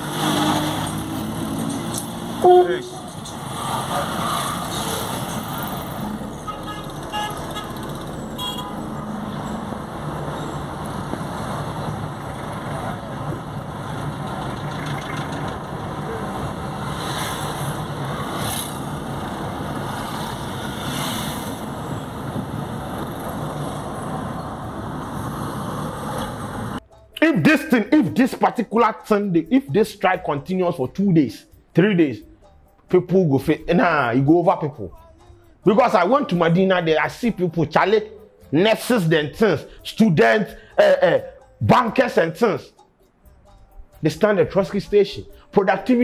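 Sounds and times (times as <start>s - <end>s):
road traffic and engine noise: 0.0s - 27.2s, 31.4s - 42.1s, 42.7s - 46.0s
car horn toots: 2.4s - 3.2s, 6.3s - 9.2s.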